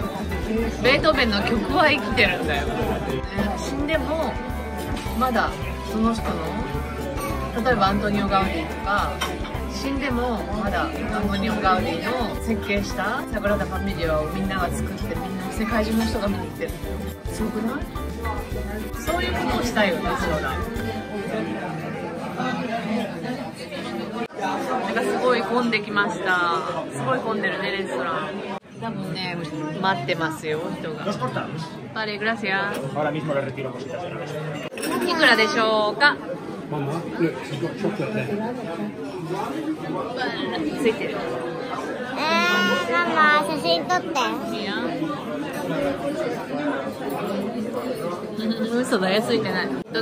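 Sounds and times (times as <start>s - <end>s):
crowd chatter in restaurant: 0.0s - 50.0s.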